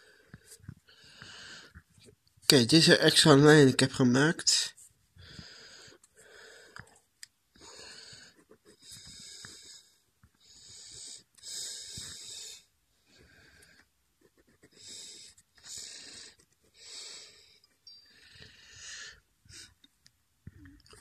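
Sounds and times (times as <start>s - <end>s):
pen scratching on paper: 7.6s - 9.8s, 13.0s - 16.8s.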